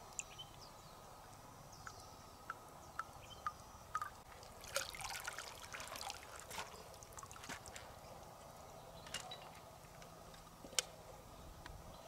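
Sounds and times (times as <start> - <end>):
river water splashing: 3.9 - 7.8.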